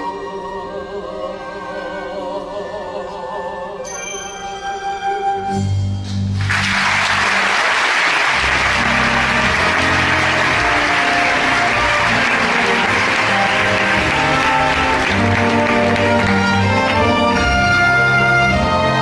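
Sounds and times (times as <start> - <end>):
orchestral music: 0.0 - 19.0
audience applauding: 6.4 - 19.0.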